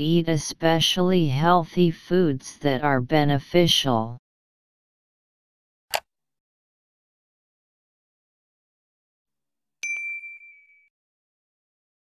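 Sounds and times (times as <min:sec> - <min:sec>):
notification bell ding: 0:09.8 - 0:10.9.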